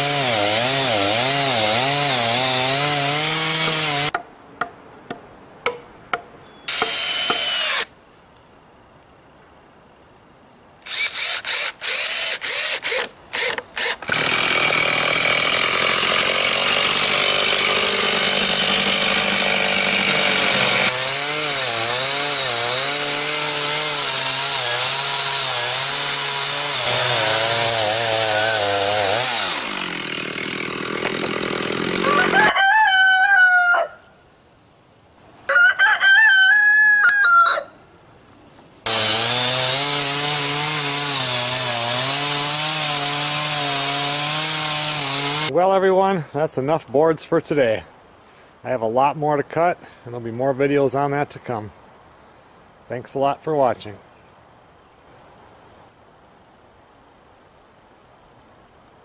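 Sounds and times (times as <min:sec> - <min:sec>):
chainsaw cutting a log: 0:00.0 - 0:04.1, 0:06.7 - 0:07.9, 0:10.8 - 0:32.5, 0:38.8 - 0:45.5
cordless drill driving screws: 0:06.7 - 0:07.9, 0:10.8 - 0:15.3.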